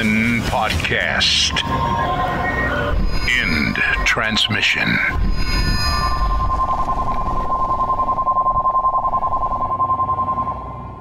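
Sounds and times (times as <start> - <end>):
high electronic tone pulsing: 1.4 - 11.0.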